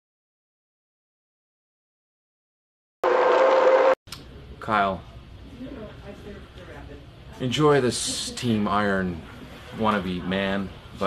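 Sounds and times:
loud noise with held tone: 3.0 - 4.0.

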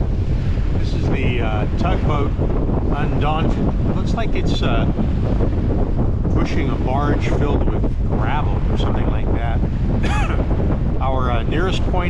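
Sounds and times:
strong wind buffeting microphone: 0.0 - 12.0.

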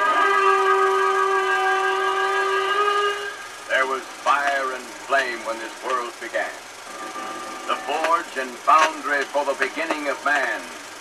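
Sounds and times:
person speaking: 7.7 - 10.7.

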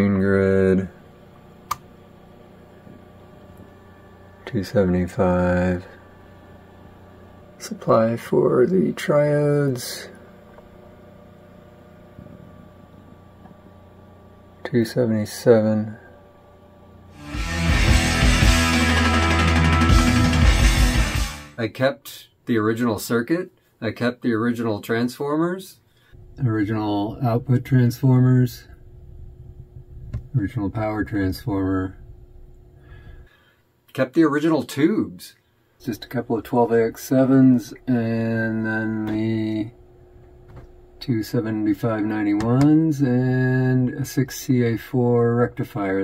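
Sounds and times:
low electrical hum: 0.0 - 17.2, 21.5 - 46.0
click: 1.7 - 1.9.

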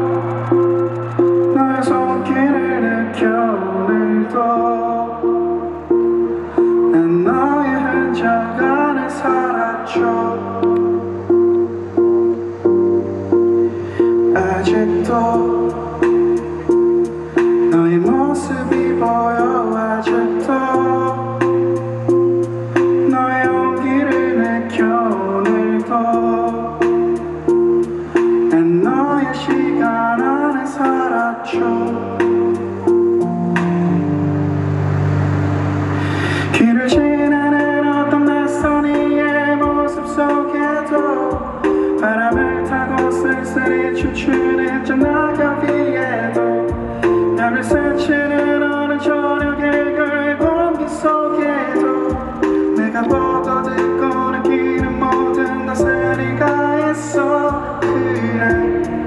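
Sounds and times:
bass notes: 0.0 - 59.0
gliding melodic line: 0.0 - 59.0.

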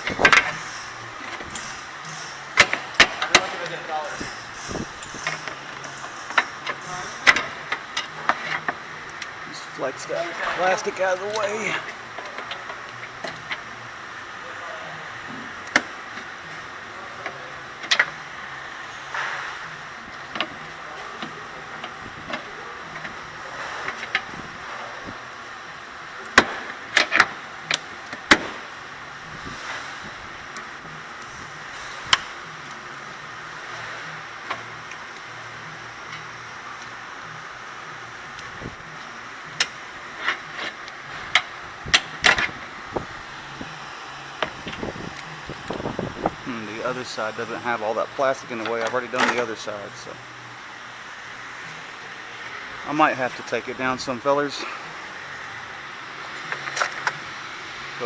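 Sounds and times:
steady background hum: 0.0 - 58.0.

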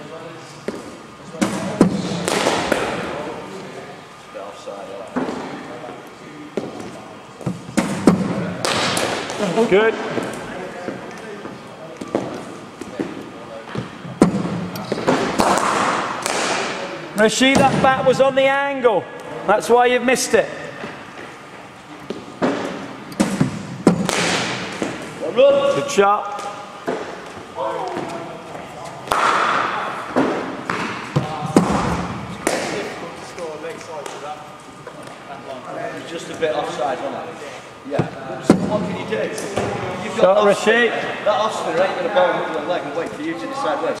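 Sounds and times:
cricket balls striking bats: 0.6 - 3.2, 6.6 - 10.4, 12.0 - 16.9, 22.1 - 25.1, 29.0 - 33.0
balls bouncing off hard floor: 12.0 - 16.7, 22.1 - 25.1, 29.0 - 32.9.

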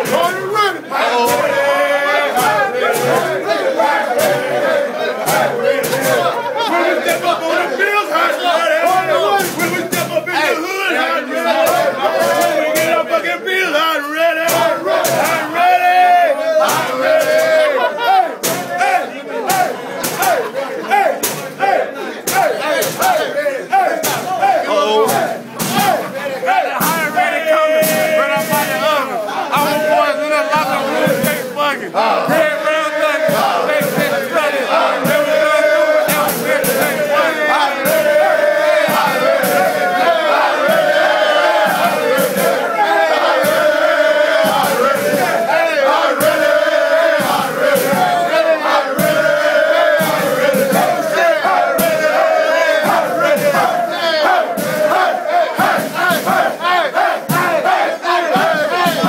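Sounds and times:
young men shouting and chanting: 0.0 - 59.0.

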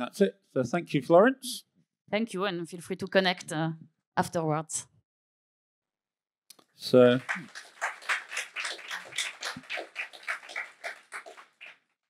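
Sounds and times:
small audience applauding: 6.8 - 11.9.

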